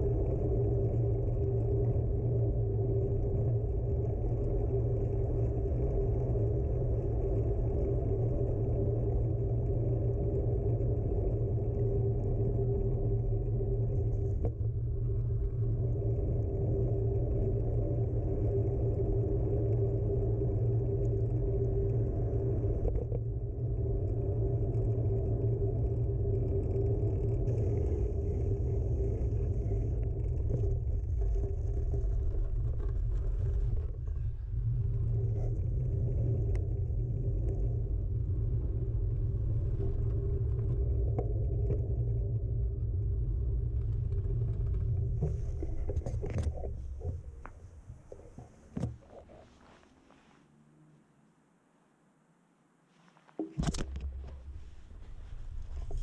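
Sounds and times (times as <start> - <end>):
wind rumble on microphone: 0.0 - 49.8, 53.4 - 56.0
bicycle tyres rolling: 0.0 - 51.0, 53.0 - 56.0
faint steady hum: 0.0 - 56.0.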